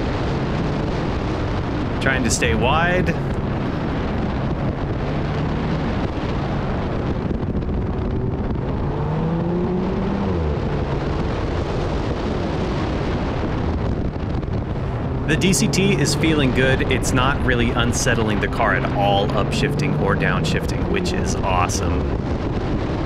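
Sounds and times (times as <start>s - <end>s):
car engine running hard: 0.0s - 23.0s
wind rush: 0.0s - 23.0s.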